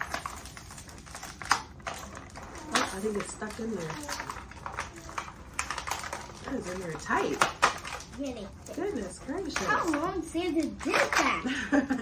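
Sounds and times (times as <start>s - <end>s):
plastic containers clicking and tapping: 1.3s - 8.4s, 9.4s - 11.4s.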